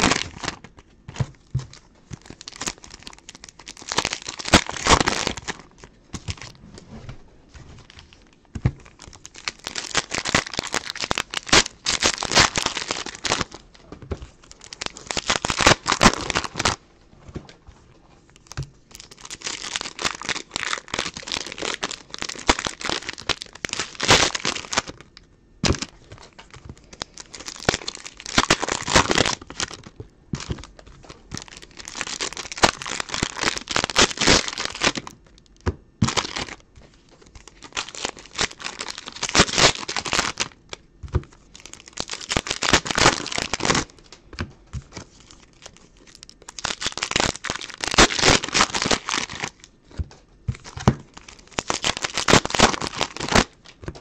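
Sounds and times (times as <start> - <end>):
card pack wrappers crinkling: 0.0 - 6.6, 7.7 - 16.8, 18.4 - 54.0.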